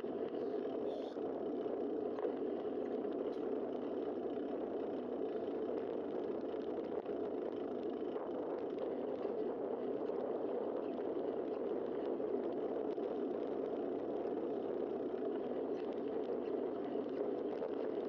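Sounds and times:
wind noise: 0.0s - 18.0s
bicycle tyres rolling: 0.1s - 18.0s.

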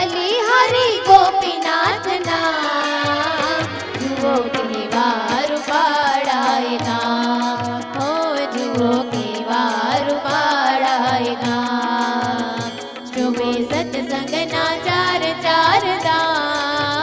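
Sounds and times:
tabla rhythm: 0.0s - 17.0s
woman singing: 0.0s - 17.0s.

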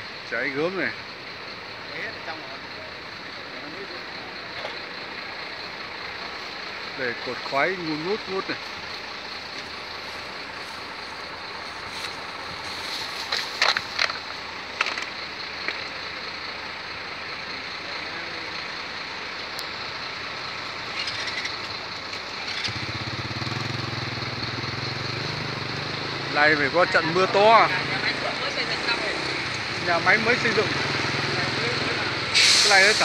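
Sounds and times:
outdoor background noise: 0.0s - 33.0s
vehicle engine humming: 0.0s - 33.0s.

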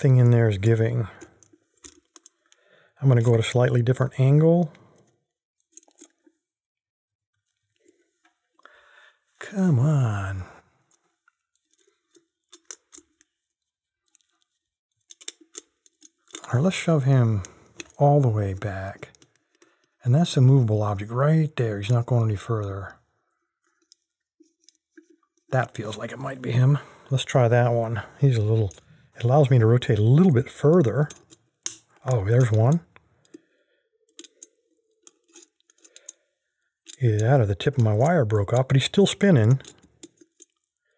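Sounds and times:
metallic clicks in a padlock: 5.7s - 6.2s, 11.7s - 13.2s, 15.0s - 16.5s, 17.4s - 18.0s, 31.0s - 32.1s, 34.1s - 36.2s, 39.5s - 40.7s.

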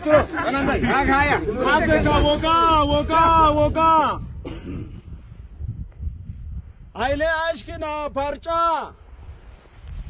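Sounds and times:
wind rumble on microphone: 0.0s - 10.0s
throat clearing: 4.4s - 5.0s.

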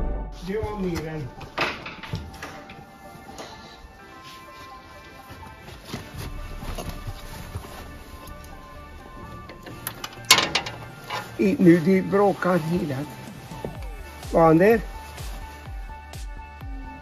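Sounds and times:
background music with sustained notes: 0.0s - 17.0s.

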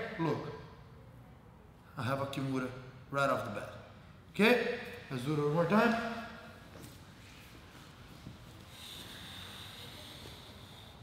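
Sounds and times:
steady low hiss: 0.0s - 11.0s
rustle of bodies on mats: 6.6s - 8.8s.

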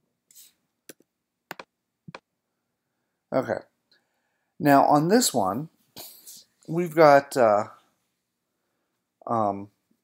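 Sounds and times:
soft hiss: 0.2s - 1.1s
computer mouse clicking: 0.9s - 2.2s.

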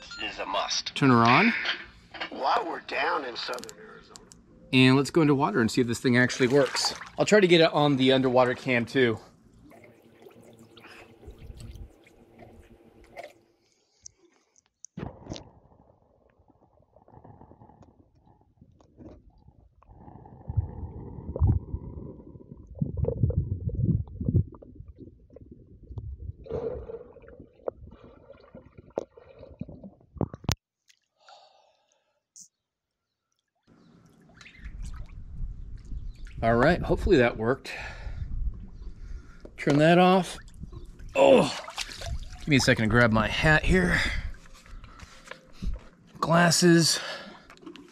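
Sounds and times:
pool water sloshing: 5.8s - 14.5s, 33.7s - 35.9s, 39.2s - 43.2s
muffled underwater rumbling: 15.0s - 30.6s.

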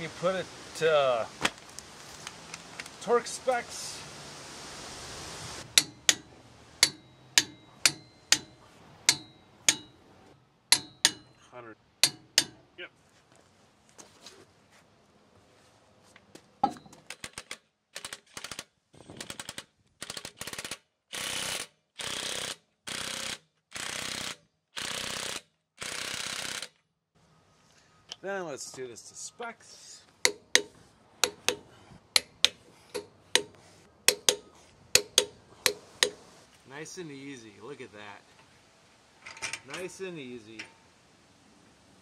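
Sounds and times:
cordless power tool bursts: 20.5s - 26.8s
ratchet wrench clicking: 32.2s - 34.4s, 35.0s - 36.2s.

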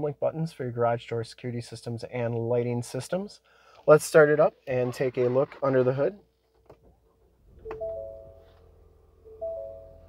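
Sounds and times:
ignition click: 7.5s - 8.4s
dashboard electronic chime: 7.6s - 8.4s, 9.2s - 10.0s.

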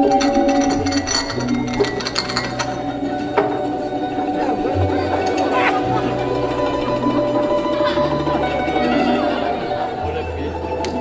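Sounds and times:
china cups clinking: 0.0s - 3.5s
soft steady musical tone: 0.0s - 11.0s.

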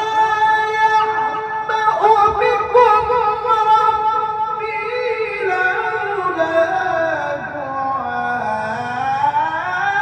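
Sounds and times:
man chanting melodic recitation: 0.0s - 10.0s.

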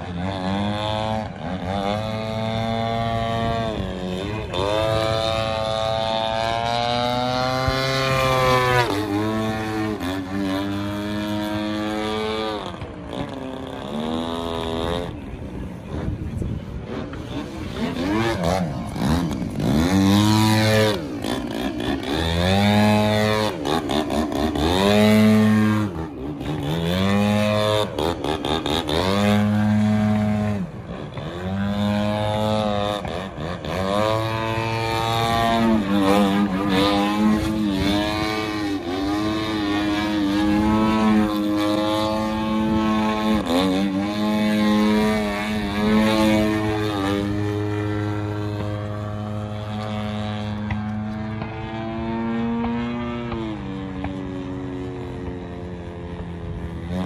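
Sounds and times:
model plane propeller engine revving: 0.0s - 57.0s.

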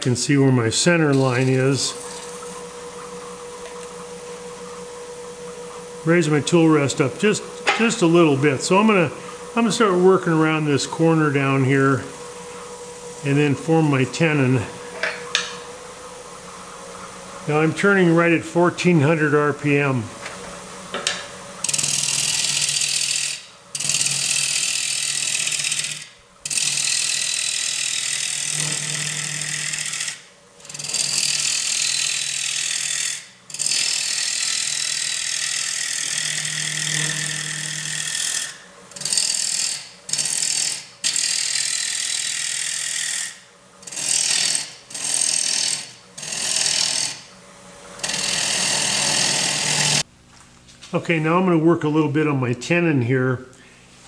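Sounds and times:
lathe motor hum: 0.0s - 50.1s
gouge cutting wood on lathe: 1.1s - 3.8s, 21.6s - 47.2s, 48.0s - 50.0s.

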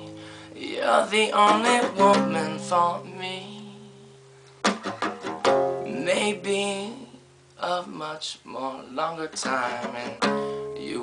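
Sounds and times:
classical guitar strummed: 0.0s - 8.0s, 9.2s - 11.0s.

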